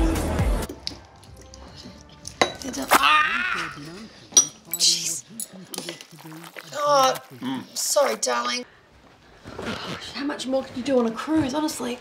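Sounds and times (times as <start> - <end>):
background music with beat: 0.0 - 2.0
tableware clinking: 4.3 - 5.0.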